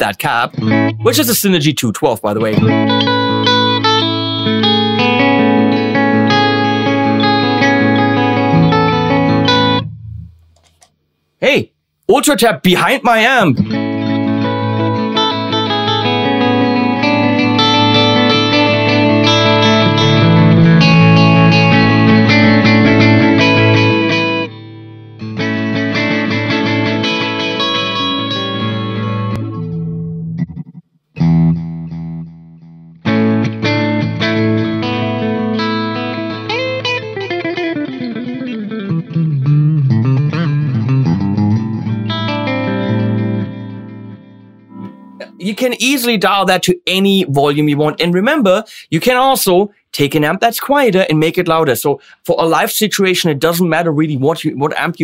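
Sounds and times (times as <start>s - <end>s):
electric guitar chords and notes: 0.0s - 10.8s, 13.2s - 47.0s.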